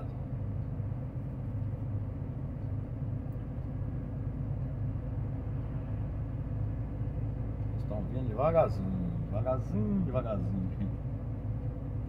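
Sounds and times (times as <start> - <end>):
truck engine and tyre rumble: 0.0 - 12.0.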